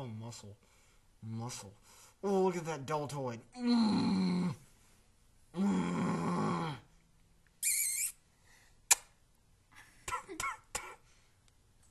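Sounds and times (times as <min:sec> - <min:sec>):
young man straining groan: 0:03.6 - 0:04.6, 0:05.6 - 0:06.9
sharp click: 0:08.9 - 0:09.1.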